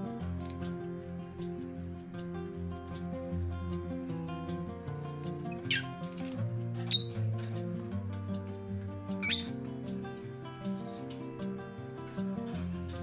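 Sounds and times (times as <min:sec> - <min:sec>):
instrumental background music: 0:00.0 - 0:13.0
lovebird chirping: 0:00.4 - 0:00.7, 0:05.5 - 0:06.0, 0:06.8 - 0:07.2, 0:09.2 - 0:09.5.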